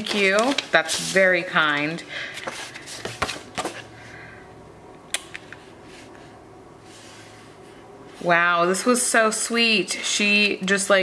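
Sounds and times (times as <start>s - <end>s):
paper rustling: 0.0s - 3.8s.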